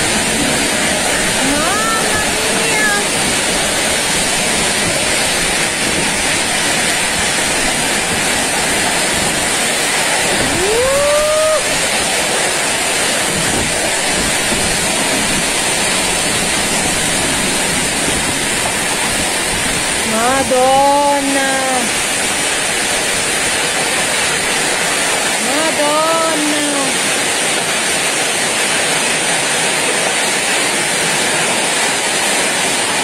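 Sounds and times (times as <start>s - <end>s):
violent wind rushing: 0.0s - 25.4s
heavy rain and hail: 0.0s - 33.0s
person exclaiming: 1.4s - 3.1s, 10.5s - 11.8s, 25.4s - 27.0s.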